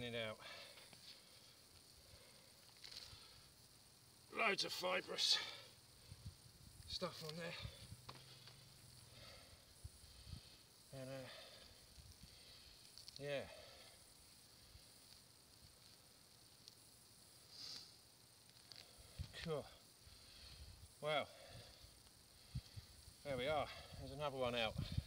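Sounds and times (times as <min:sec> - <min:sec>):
faint outdoor hiss: 0:00.0 - 0:25.0.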